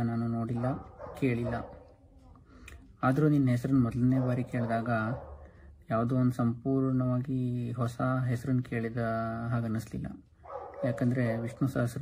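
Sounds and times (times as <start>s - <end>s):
man speaking: 0.0s - 1.9s, 3.0s - 12.0s.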